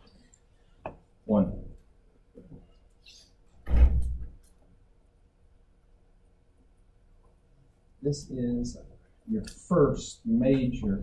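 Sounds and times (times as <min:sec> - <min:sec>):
loud thump: 0:03.6 - 0:04.2.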